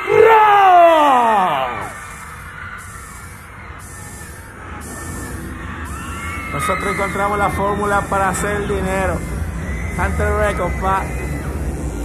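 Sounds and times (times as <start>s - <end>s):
low electronic drone: 1.2s - 12.0s
electronic pitch gliding downward: 1.3s - 12.0s.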